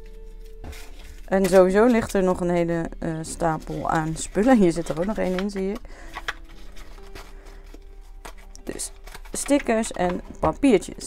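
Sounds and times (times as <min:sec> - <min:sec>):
paper sheets rustling: 0:00.0 - 0:11.0.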